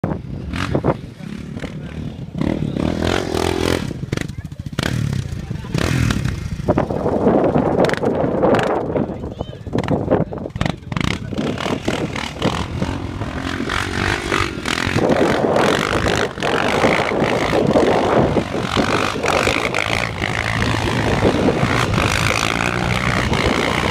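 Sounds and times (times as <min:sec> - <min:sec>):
wind buffeting microphone: 0:00.0 - 0:23.9
quad bike engine revving: 0:00.1 - 0:23.9.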